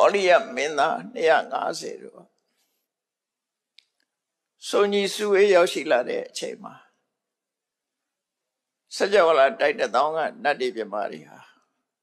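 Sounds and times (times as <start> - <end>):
man speaking: 0.0 - 2.2, 4.6 - 6.8, 9.0 - 11.4.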